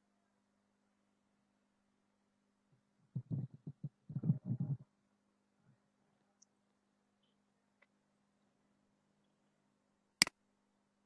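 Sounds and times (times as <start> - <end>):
muffled low rumbling bumps: 3.2 - 4.8.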